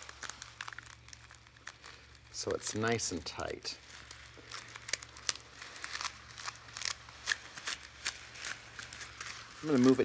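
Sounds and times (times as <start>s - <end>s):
rubber band being wound: 0.0s - 1.8s, 3.8s - 10.0s
grass blades clicking and rustling: 0.0s - 10.0s.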